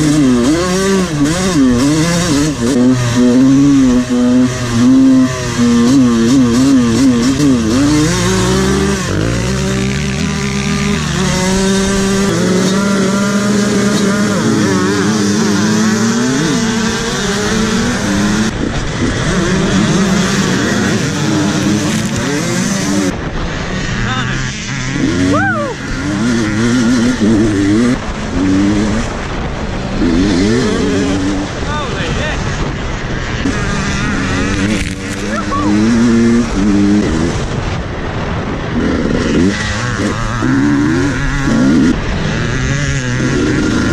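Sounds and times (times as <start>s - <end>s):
dirt bike engines revving: 0.0s - 43.9s.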